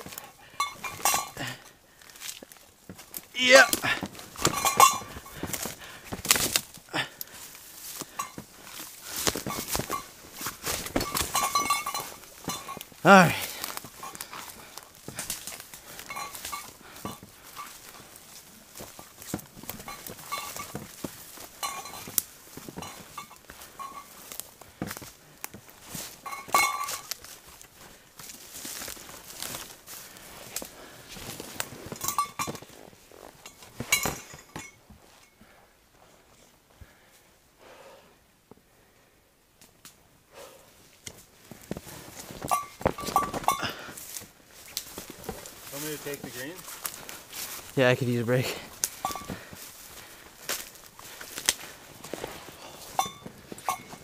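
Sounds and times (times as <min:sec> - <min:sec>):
footsteps crunching through brush: 0:00.0 - 0:35.3, 0:40.8 - 0:54.0.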